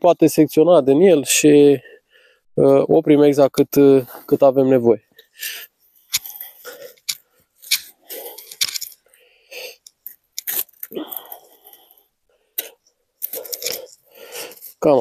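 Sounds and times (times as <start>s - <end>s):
plastic mesh being cut: 9.8s - 11.3s
crunching and scraping plastic: 13.2s - 14.9s.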